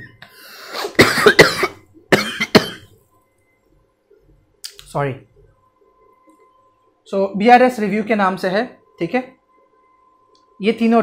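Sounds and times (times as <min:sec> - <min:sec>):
man coughing: 0:00.0 - 0:02.9.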